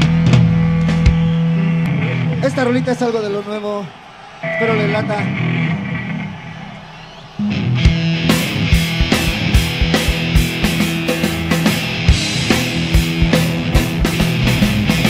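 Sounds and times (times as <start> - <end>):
guitar and bass: 0.0 - 2.9, 4.4 - 6.5, 7.4 - 15.0
drum hits: 7.8 - 15.0.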